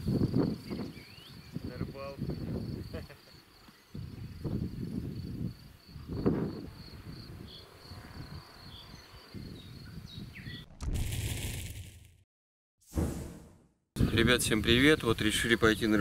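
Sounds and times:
insects trilling: 0:00.0 - 0:10.3
swoosh sound effect: 0:12.9 - 0:13.7.

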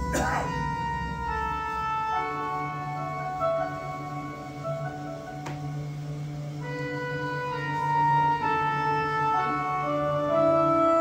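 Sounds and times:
melody of long held notes: 0:00.0 - 0:11.0
steady low tone: 0:00.0 - 0:11.0.

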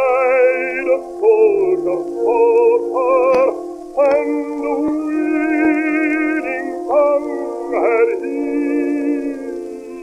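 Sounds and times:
baritone singing with vibrato: 0:00.0 - 0:10.0
small orchestra: 0:00.0 - 0:10.0.

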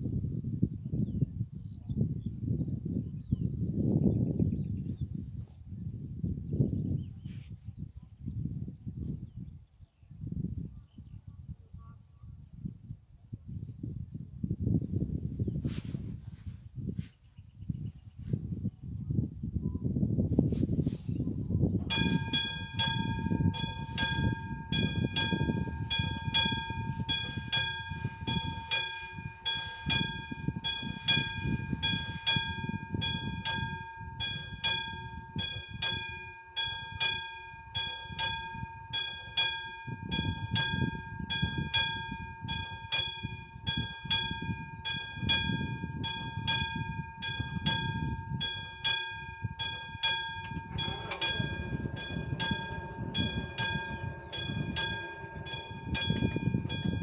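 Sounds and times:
wind rumbling on microphone: 0:00.0 - 0:57.0
barrier mechanical hum: 0:21.8 - 0:38.9, 0:49.6 - 0:57.0
level crossing warning bell: 0:21.8 - 0:57.0.

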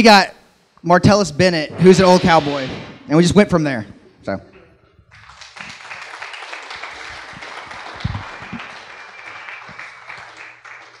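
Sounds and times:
audience applauding: 0:05.1 - 0:11.0.

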